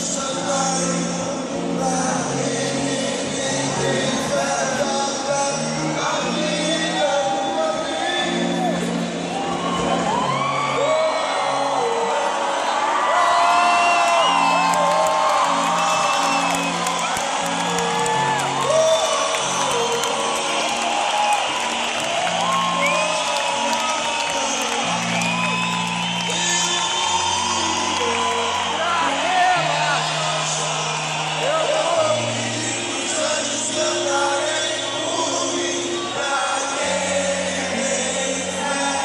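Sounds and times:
crowd whooping and singing: 0:00.0 - 0:39.0.

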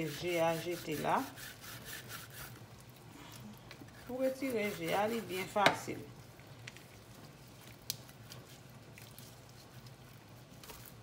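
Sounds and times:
knife scraping and cutting: 0:00.0 - 0:02.6.

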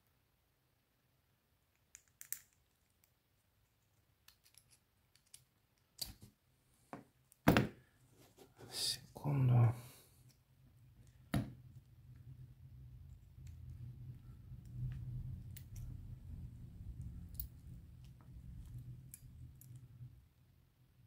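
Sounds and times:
metal clicks and taps of tools: 0:01.7 - 0:03.1, 0:04.2 - 0:06.2.

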